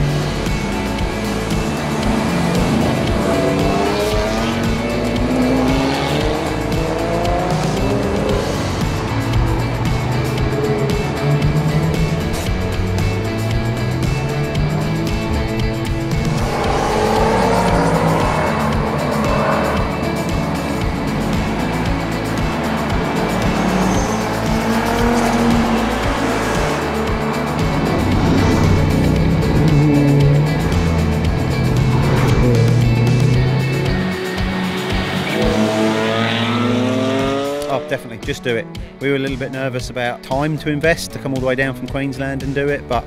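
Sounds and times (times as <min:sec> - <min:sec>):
sports car engines revving: 0:00.0 - 0:38.1
background music with bass line: 0:00.0 - 0:43.0.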